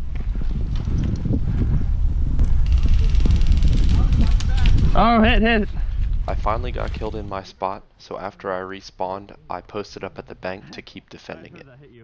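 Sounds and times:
wind rumble on microphone: 0.0 - 7.8.

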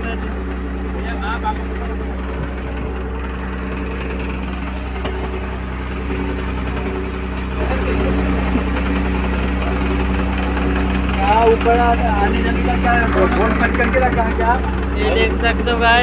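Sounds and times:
boat engine idling: 0.0 - 16.0.

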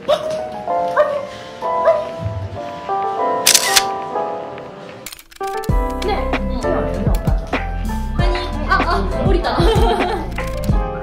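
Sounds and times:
background music: 0.0 - 11.0
camera shutter: 3.5 - 4.0, 5.1 - 5.8, 10.3 - 10.8.

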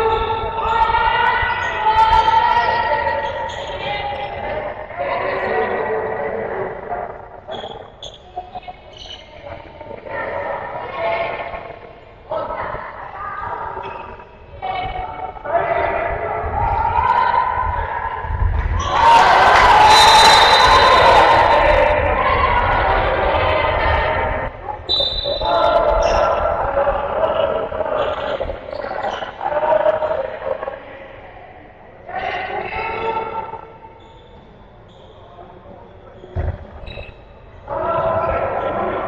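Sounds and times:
players and spectators shouting: 0.0 - 7.8, 12.3 - 31.3
crowd cheering: 16.4 - 28.6.

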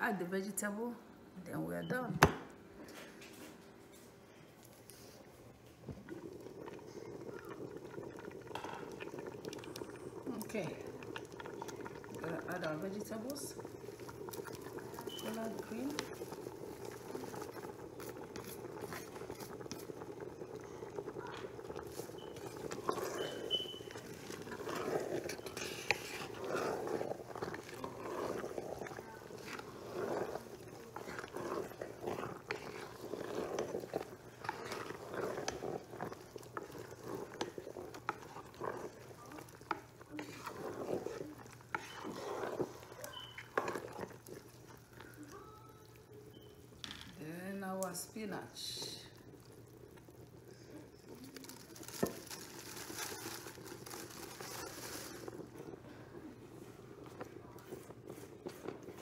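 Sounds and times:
wooden spoon stirring soup: 3.2 - 59.0
soup bubbling: 4.2 - 59.0.

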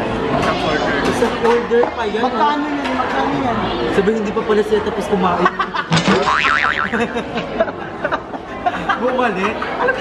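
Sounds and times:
cartoon boing sound effect: 6.0 - 7.0.

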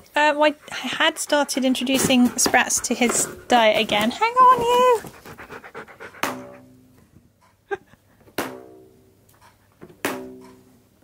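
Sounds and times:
dog panting: 0.2 - 6.7.

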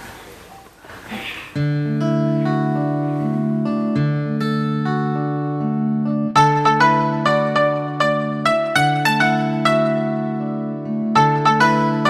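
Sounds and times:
instrumental music sustained chord: 1.7 - 12.0.

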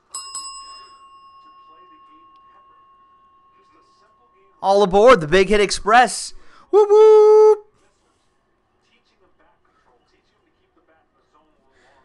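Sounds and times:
small bell ringing: 0.0 - 5.7.

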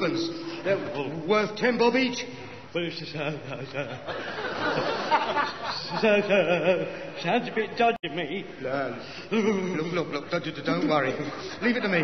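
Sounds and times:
studio audience laughing: 4.0 - 6.6.

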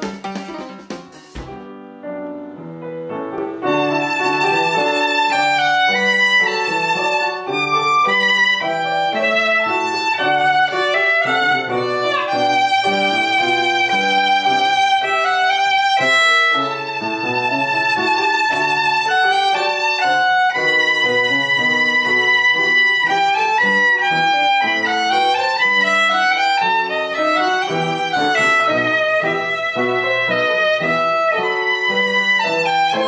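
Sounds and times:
upright piano playing: 0.0 - 33.0
violin melody with vibrato: 3.4 - 33.0.

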